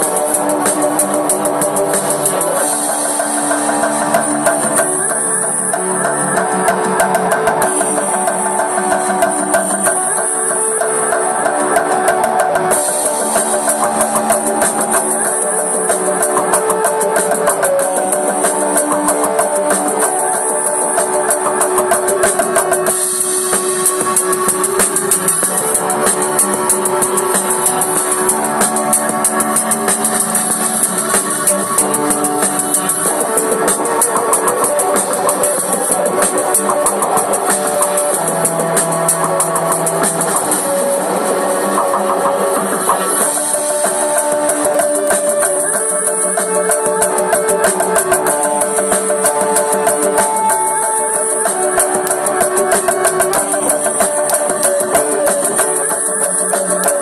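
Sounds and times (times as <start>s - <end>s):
drums keeping a beat: 0.0s - 57.0s.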